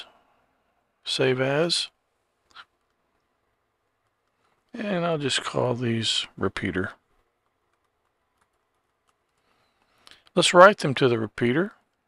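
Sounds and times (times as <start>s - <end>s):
faint keyboard clicks: 2.4s - 4.8s, 7.0s - 10.4s.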